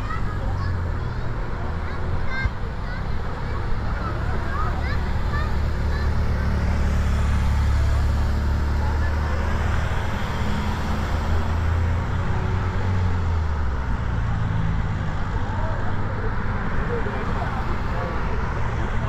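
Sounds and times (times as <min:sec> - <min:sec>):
cars driving past: 0:00.0 - 0:19.0.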